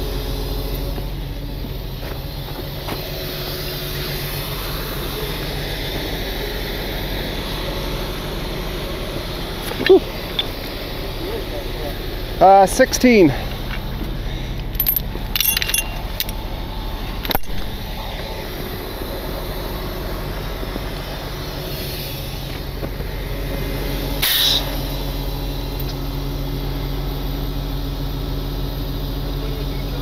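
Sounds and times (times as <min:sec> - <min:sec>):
diesel truck engine idling: 0:00.0 - 0:30.0
chain links clinking: 0:14.6 - 0:16.4.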